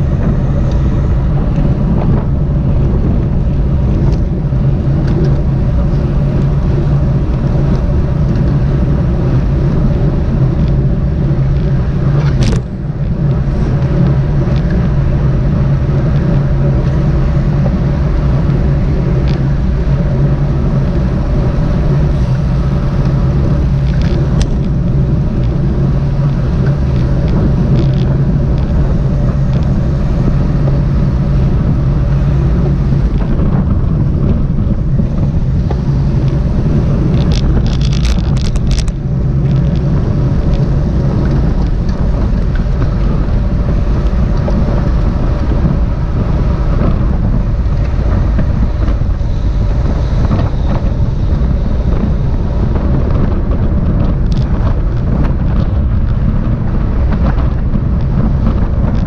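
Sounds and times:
road noise: 0.0 - 59.0
wind rush: 0.0 - 59.0.

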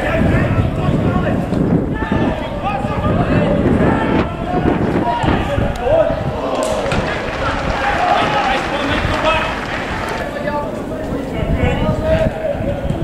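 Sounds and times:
wind rumbling on microphone: 0.0 - 13.0
people shouting: 1.9 - 10.4.

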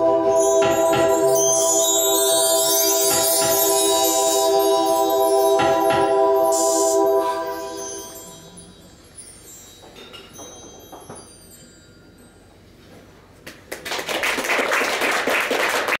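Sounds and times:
bar chimes ringing: 0.0 - 12.9
audience applause: 13.7 - 16.0.

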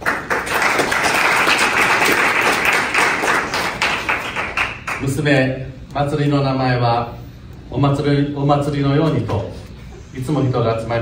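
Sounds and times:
crowd applauding: 0.0 - 5.1.

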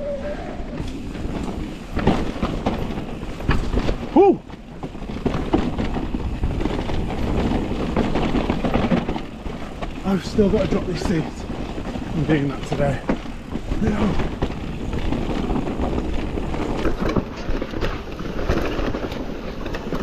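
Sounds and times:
bike rattling and knocking: 0.0 - 20.0
bike tyres on dirt: 0.0 - 20.0.

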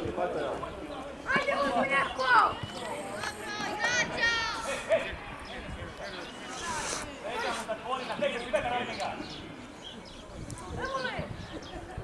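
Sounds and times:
young players shouting: 3.4 - 5.0.

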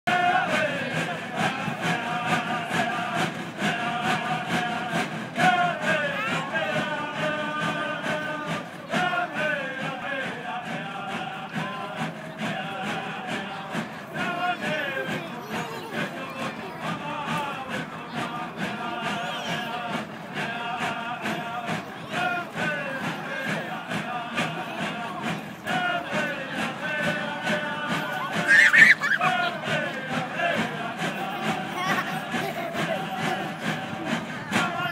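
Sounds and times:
men chanting together: 0.1 - 34.9
high call: 28.1 - 29.6.

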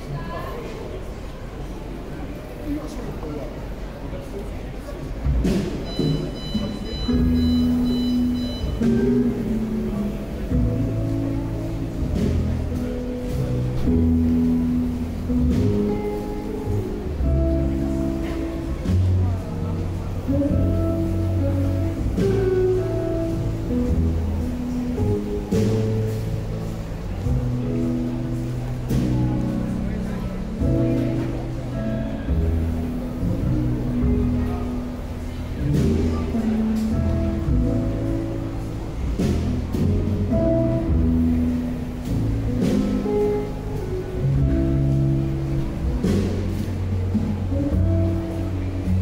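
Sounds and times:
crowd voices: 0.0 - 49.0
walking upright bass: 1.1 - 49.0
jazz trio playing: 5.0 - 49.0
drum kit: 5.2 - 49.0
drum hit: 5.3 - 7.5
archtop guitar melody: 5.4 - 49.0.

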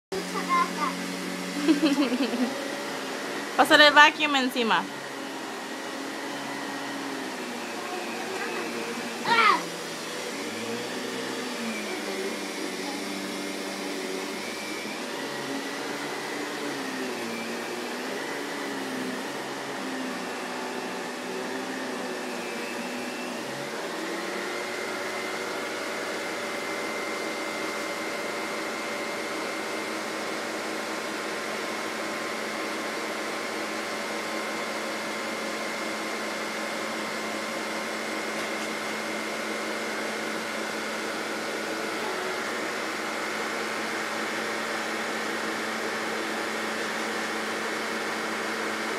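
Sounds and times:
vacuum cleaner running: 0.1 - 48.9.

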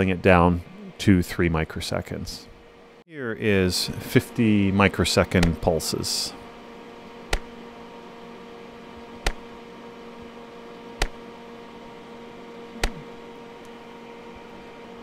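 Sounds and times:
electrical hum: 0.0 - 15.0
sharp clicks: 5.4 - 5.6, 9.2 - 9.4.

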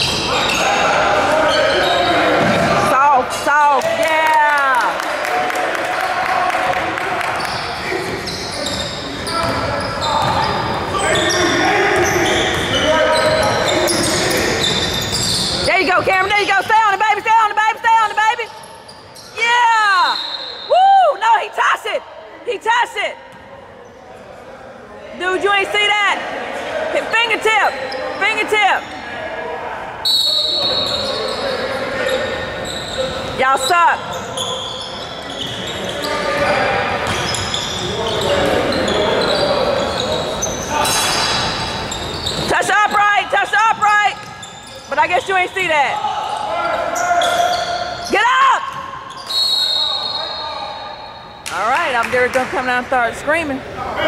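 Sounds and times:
sneakers squeaking: 0.0 - 4.1, 6.7 - 22.0, 22.6 - 24.4, 26.6 - 29.2, 30.0 - 53.6
voices echoing: 0.0 - 54.0.

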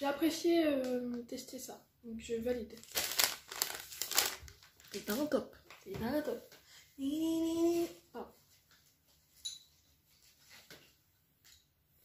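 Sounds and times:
plastic snack bag crinkling: 2.7 - 5.4.

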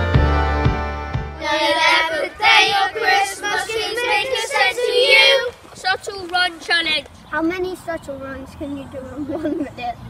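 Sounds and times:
children singing unaccompanied: 1.4 - 7.1.

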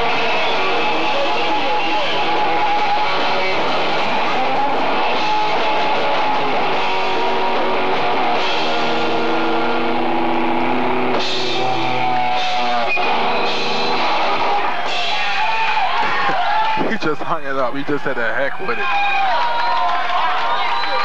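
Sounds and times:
punk rock band playing: 0.0 - 17.0.

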